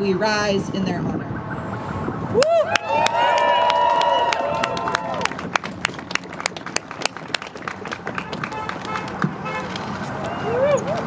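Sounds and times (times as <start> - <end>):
crowd clapping: 2.4 - 10.6.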